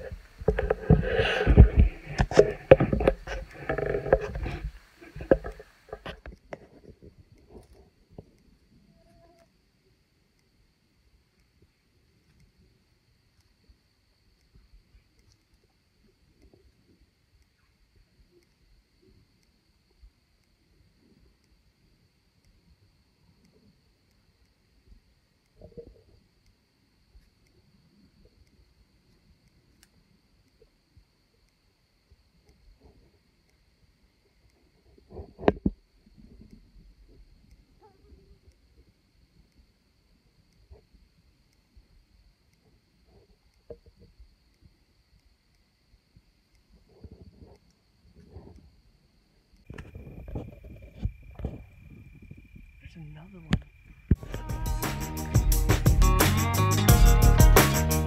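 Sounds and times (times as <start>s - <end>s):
soft rustle: 0.0s - 9.6s, 46.2s - 52.9s
faint ticks: 0.0s - 54.5s
faint high-pitched hum: 0.0s - 55.4s
camera handling rustles and knocks: 0.1s - 6.7s.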